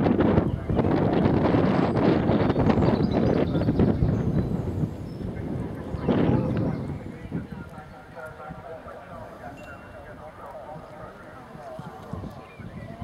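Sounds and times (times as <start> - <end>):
people talking: 0.2 - 2.2, 5.2 - 13.0
horse hooves trotting on grass: 5.3 - 13.0.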